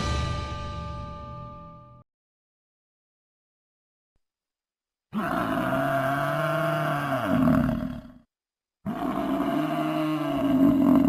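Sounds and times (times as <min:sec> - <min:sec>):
deep animal roar: 0:05.1 - 0:11.0.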